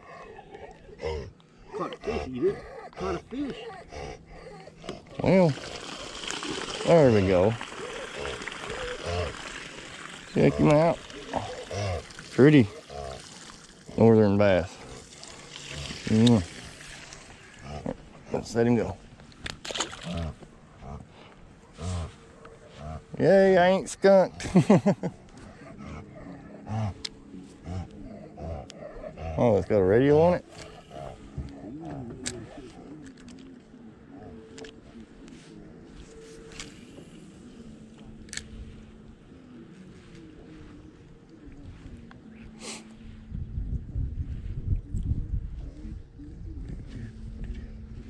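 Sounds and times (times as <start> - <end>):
man murmuring under his breath: 0.0 - 5.6, 10.3 - 13.2, 20.1 - 38.2, 39.4 - 48.0
drawn-out voiced sounds: 1.7 - 19.0.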